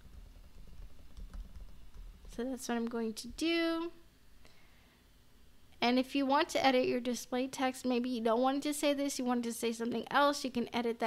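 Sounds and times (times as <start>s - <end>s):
keyboard typing: 0.0s - 2.4s.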